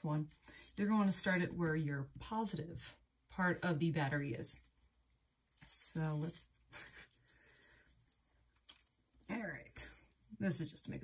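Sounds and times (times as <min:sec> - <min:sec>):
faint rustling of foil tape and paper: 0:00.0 - 0:01.8, 0:04.6 - 0:11.0.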